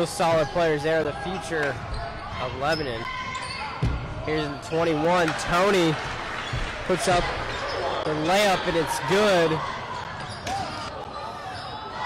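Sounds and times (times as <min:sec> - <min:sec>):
crowd murmur: 0:04.0 - 0:12.0.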